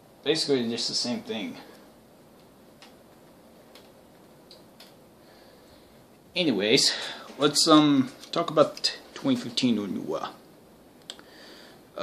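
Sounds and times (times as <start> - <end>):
faint irregular clicks: 1.7 - 5.0, 11.0 - 11.3.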